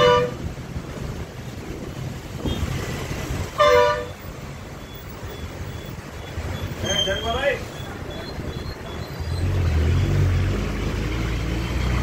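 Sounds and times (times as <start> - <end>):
small truck engine rumbling: 3.2 - 12.0.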